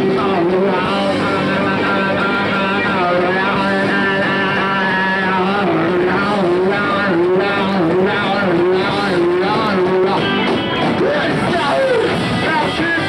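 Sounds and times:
distorted electric guitar phrase: 0.0s - 13.0s
live rock band playing: 0.0s - 13.0s.

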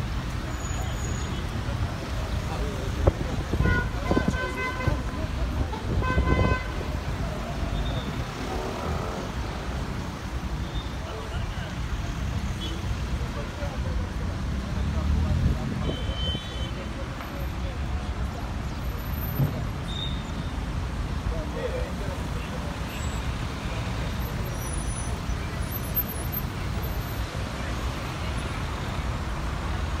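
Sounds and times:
city traffic: 0.0s - 30.0s.

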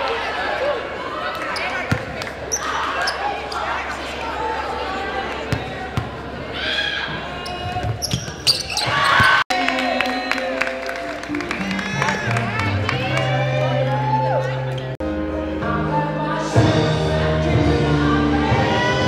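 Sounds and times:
echoing crowd chatter: 0.0s - 19.0s
music: 9.6s - 19.0s.

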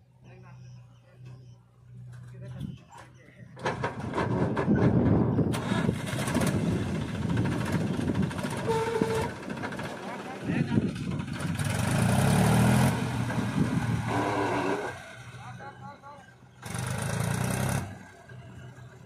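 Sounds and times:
tractor diesel engine under load: 0.1s - 19.0s.

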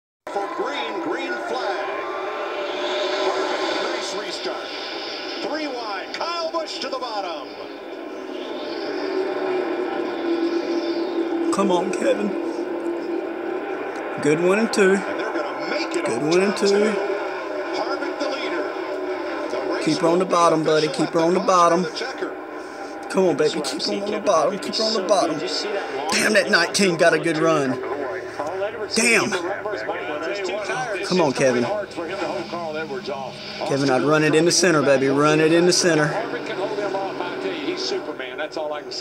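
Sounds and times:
broadcast commentary: 0.3s - 39.0s
race car engines at full throttle: 7.8s - 29.4s.

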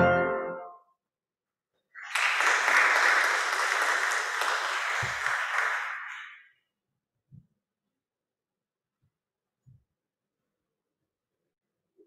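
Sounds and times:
crowd clapping: 2.0s - 6.5s.

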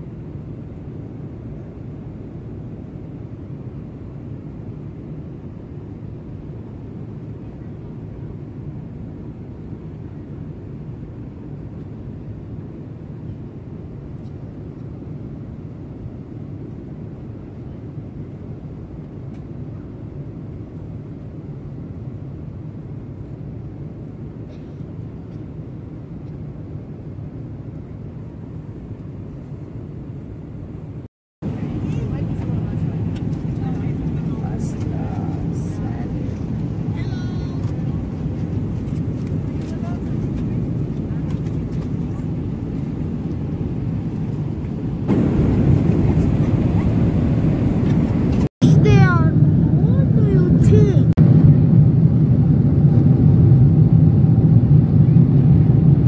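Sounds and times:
airliner cabin rumble: 0.0s - 56.0s.

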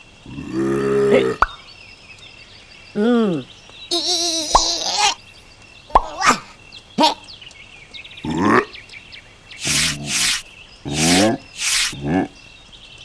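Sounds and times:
gruff cartoon vocalizations: 3.0s - 5.2s, 6.0s - 7.3s, 8.2s - 8.7s, 9.6s - 12.4s.

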